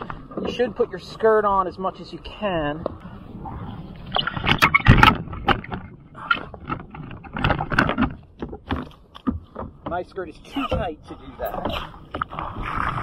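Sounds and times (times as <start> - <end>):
gear clunking and scraping: 2.8 - 13.0.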